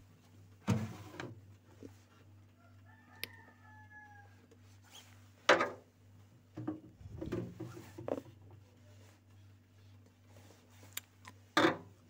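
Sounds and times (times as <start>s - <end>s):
steady low hum: 5.9s - 11.4s.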